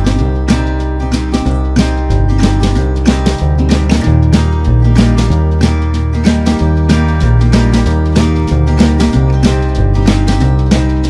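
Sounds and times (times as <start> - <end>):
low bass notes: 0.0 - 11.0
steady beat: 0.0 - 11.0
strummed acoustic guitar: 0.0 - 11.0.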